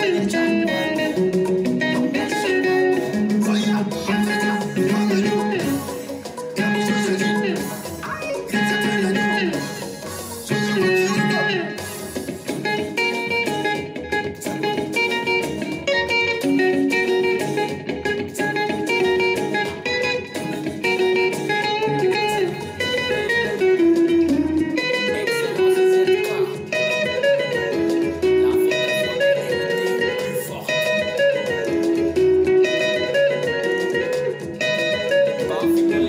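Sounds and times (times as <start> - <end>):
backing track with beat and bass: 0.0 - 36.0
electric guitar lead melody: 0.0 - 36.0.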